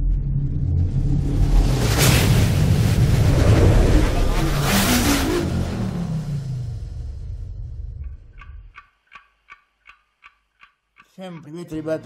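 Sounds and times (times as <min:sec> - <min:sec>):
big whooshing sweeps: 0:00.0 - 0:07.2
deep rumble: 0:00.0 - 0:08.7.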